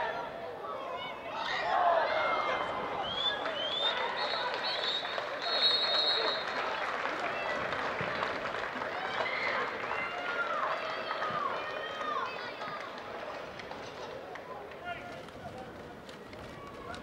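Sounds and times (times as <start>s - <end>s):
open-air stadium ambience: 0.0s - 17.0s.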